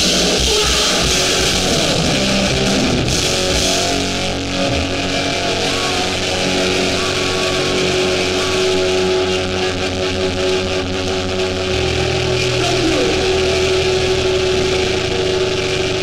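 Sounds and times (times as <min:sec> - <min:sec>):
punk band playing loud: 0:00.0 - 0:16.0
ringing guitar notes: 0:01.0 - 0:10.7, 0:11.4 - 0:16.0.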